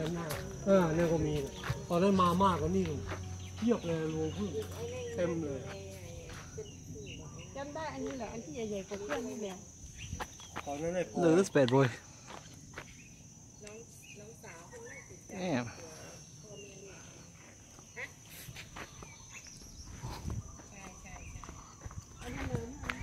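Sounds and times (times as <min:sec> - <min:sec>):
people talking: 0:00.0 - 0:09.7, 0:20.7 - 0:23.0
high-pitched insect drone: 0:00.0 - 0:23.0.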